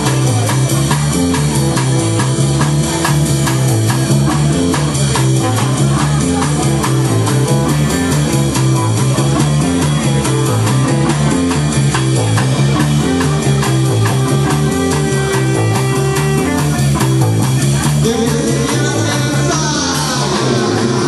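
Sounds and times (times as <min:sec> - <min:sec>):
bass line: 0:00.0 - 0:21.0
drum hits: 0:00.0 - 0:21.0
noisy saxophones and effects: 0:03.6 - 0:21.0.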